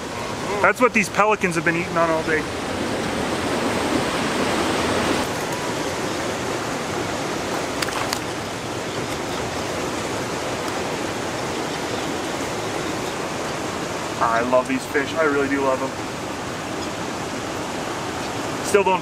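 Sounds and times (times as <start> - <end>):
river water rushing: 0.0 - 19.0.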